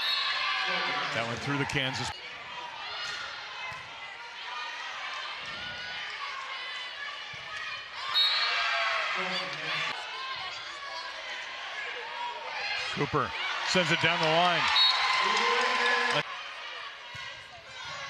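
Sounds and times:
crowd voices chattering and calling: 0.0s - 18.0s.

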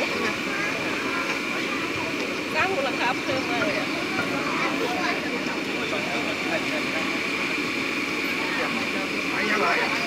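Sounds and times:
cotton candy machine whirring: 0.0s - 10.0s.

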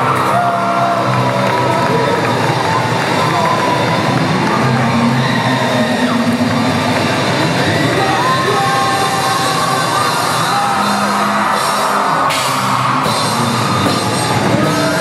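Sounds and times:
audience yelling: 0.0s - 15.0s
rock band with electric guitars: 0.0s - 15.0s.

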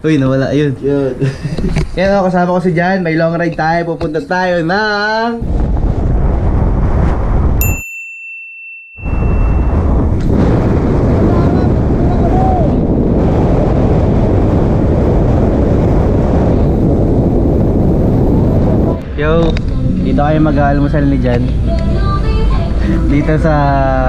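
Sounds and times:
wind buffeting microphone: 0.4s - 7.8s, 9.0s - 24.0s
high ding: 7.6s - 10.0s.

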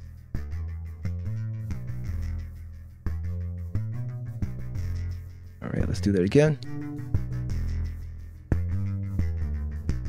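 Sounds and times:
electronic beat with bassline: 6.6s - 8.0s.

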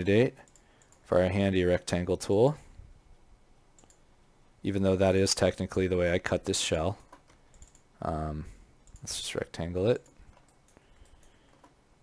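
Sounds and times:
faint computer clicks: 0.4s - 1.1s, 3.7s - 4.1s, 7.0s - 7.9s, 8.8s - 9.2s, 9.9s - 11.8s.

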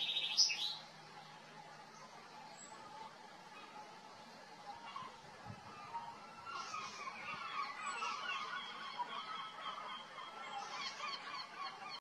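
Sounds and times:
flock of waterfowl calling: 0.0s - 0.9s, 2.0s - 12.0s.

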